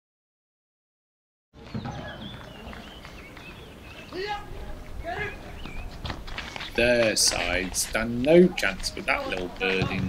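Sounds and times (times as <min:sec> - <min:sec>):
small chirping calls: 0:01.7 - 0:06.8.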